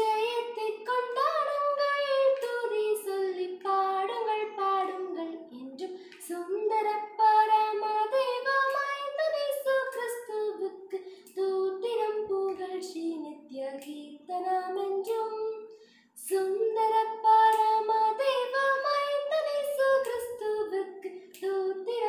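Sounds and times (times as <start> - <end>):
girl singing unaccompanied: 0.0 - 22.0.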